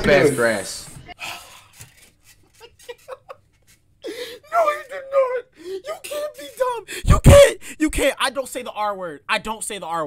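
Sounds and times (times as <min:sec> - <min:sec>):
man gasping with held-in laughter: 0:04.0 - 0:04.5
man sighing: 0:05.5 - 0:05.8.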